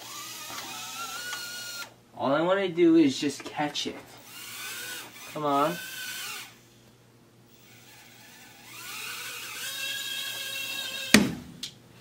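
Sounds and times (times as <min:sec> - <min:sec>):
drone motors whining: 0:00.0 - 0:01.9, 0:04.2 - 0:06.8, 0:07.5 - 0:11.2.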